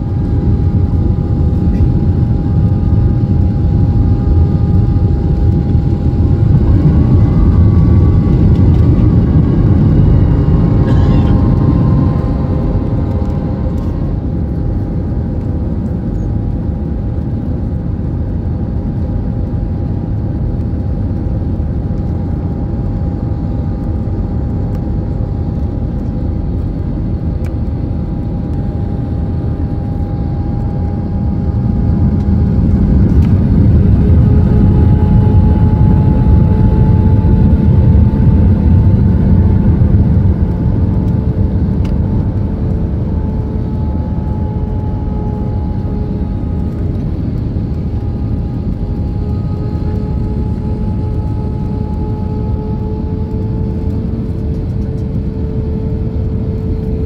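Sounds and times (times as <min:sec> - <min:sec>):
jet engine and airflow rumble: 0:00.0 - 0:57.0.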